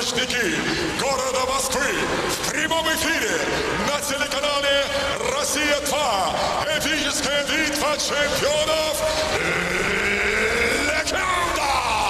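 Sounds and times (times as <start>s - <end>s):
man's drawn-out announcing call: 0.0s - 9.5s
crowd noise: 0.0s - 12.0s.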